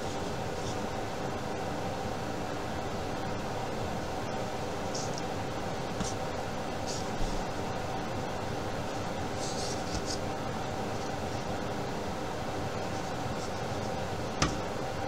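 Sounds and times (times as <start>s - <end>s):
fan or air conditioner running: 0.0s - 15.0s.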